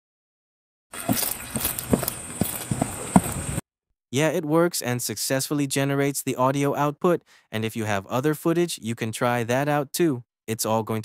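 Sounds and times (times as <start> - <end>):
hoof thuds and scuffs: 1.0 - 3.6.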